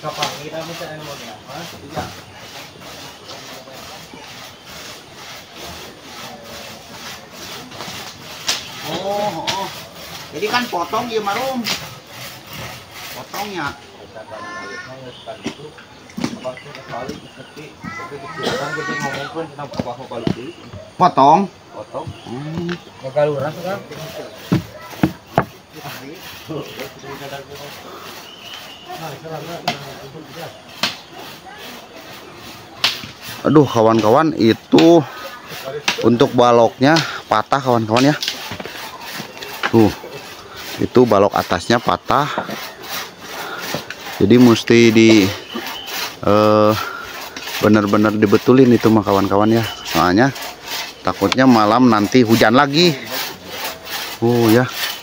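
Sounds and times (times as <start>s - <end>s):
hand saw cutting wood: 0.0s - 15.6s, 23.0s - 55.0s
wood rasping: 0.0s - 21.4s, 22.0s - 55.0s
people talking: 13.2s - 25.2s, 39.2s - 40.2s, 44.2s - 45.6s, 47.6s - 50.4s, 51.1s - 54.8s
sharp wooden knocks: 24.4s - 25.6s.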